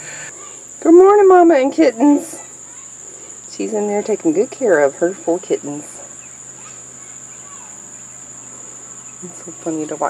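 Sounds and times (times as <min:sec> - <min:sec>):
crickets trilling: 0:00.0 - 0:10.0
faint low hum: 0:00.0 - 0:10.0.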